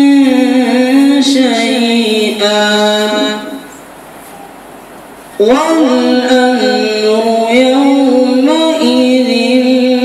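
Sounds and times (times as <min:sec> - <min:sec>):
person singing a long note: 0:00.0 - 0:03.7, 0:05.4 - 0:10.0.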